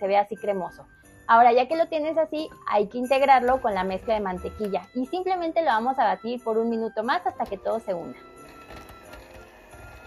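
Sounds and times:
soft background music: 0:00.0 - 0:10.0
stand mixer running: 0:08.1 - 0:10.0.

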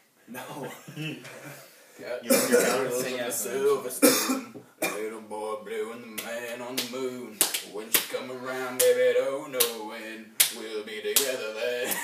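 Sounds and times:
man singing wordless tune: 0:02.3 - 0:12.0
sharp slaps keeping a beat: 0:06.2 - 0:08.2, 0:08.8 - 0:09.0, 0:09.6 - 0:09.8, 0:10.4 - 0:10.6, 0:11.2 - 0:12.0.

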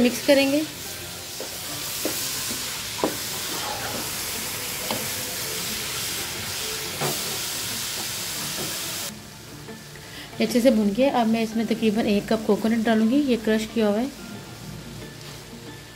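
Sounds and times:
carrots sizzling in a pot: 0:00.0 - 0:15.9.

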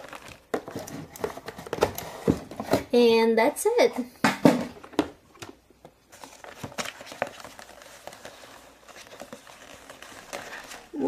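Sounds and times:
plastic crinkling and rustling: 0:00.0 - 0:02.9, 0:04.7 - 0:11.0.

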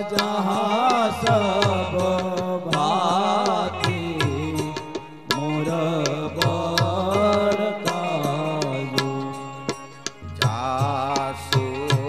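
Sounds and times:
devotional singing: 0:00.0 - 0:12.0
instrumental accompaniment: 0:00.0 - 0:12.0
percussion strokes: 0:00.0 - 0:12.0.

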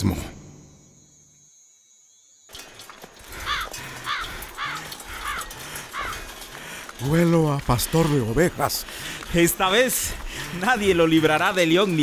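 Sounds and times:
outdoor background hiss: 0:00.0 - 0:12.0
harsh bird calls: 0:02.5 - 0:12.0.

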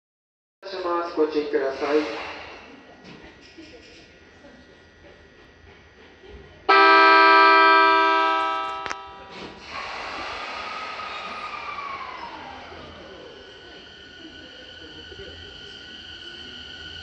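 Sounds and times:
train running noise with whine: 0:00.6 - 0:17.0
train horn blast: 0:06.7 - 0:09.6.

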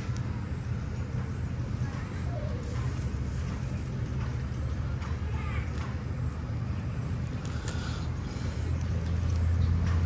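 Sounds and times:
low motor-like rumble: 0:00.0 - 0:10.0.

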